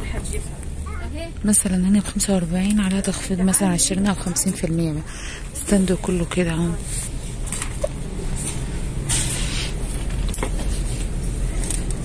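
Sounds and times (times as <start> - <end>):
low rumble of shop noise: 0.0 - 12.0.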